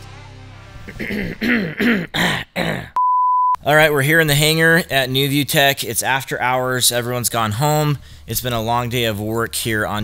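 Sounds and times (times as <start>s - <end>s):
man clearing his throat: 0.9s - 3.0s
test-tone beep: 3.0s - 3.6s.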